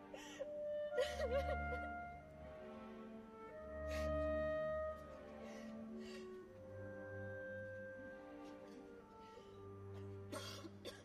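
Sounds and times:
quiet orchestral notes: 0:00.0 - 0:11.0
soprano sobbing gasps: 0:00.1 - 0:01.3, 0:05.4 - 0:06.5.

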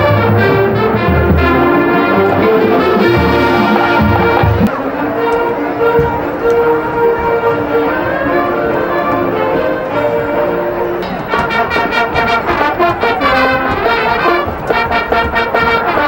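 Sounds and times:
brass punchy chords: 0:00.0 - 0:16.0
marching band playing jazz: 0:00.0 - 0:16.0.

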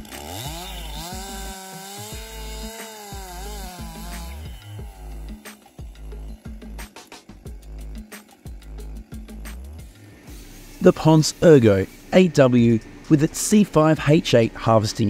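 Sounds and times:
background music with beat: 0:00.0 - 0:12.1
chainsaw cutting log: 0:00.0 - 0:12.9.

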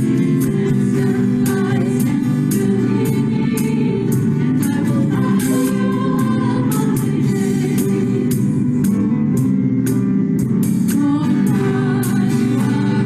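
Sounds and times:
person singing: 0:00.0 - 0:08.9, 0:10.9 - 0:13.0
worship band playing a song: 0:00.0 - 0:13.0.

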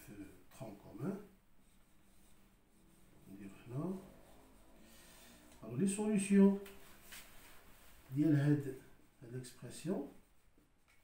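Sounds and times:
man speaking: 0:00.0 - 0:01.4, 0:03.2 - 0:04.2, 0:05.6 - 0:06.7, 0:08.1 - 0:10.2
marker pen on whiteboard: 0:00.6 - 0:11.0.

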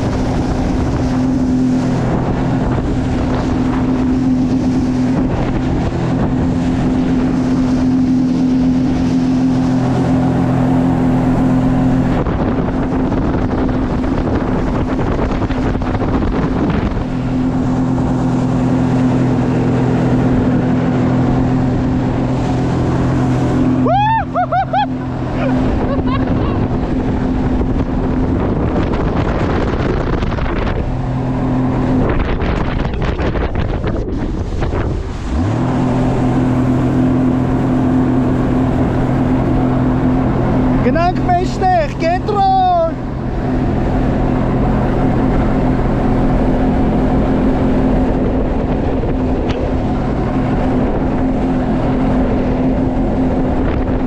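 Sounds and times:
personal watercraft engine running: 0:00.0 - 0:54.0
water rushing: 0:00.0 - 0:54.0
wind on microphone: 0:00.0 - 0:54.0.

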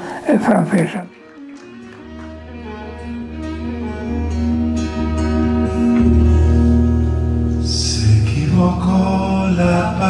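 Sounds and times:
violin: 0:01.2 - 0:06.1
acoustic guitar: 0:01.6 - 0:10.0
men singing together: 0:08.0 - 0:10.0.

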